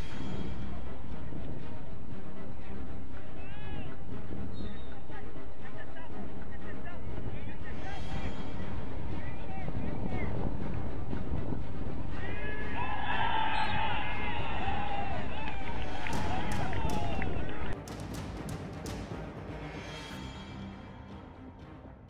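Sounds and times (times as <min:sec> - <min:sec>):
people shouting and calling: 0:03.3 - 0:04.0, 0:12.1 - 0:17.8
wind rumble on microphone: 0:08.3 - 0:12.9.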